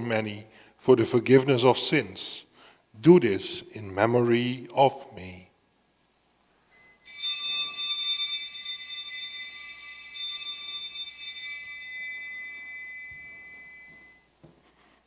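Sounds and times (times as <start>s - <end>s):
high bright bells ringing: 6.6s - 14.4s.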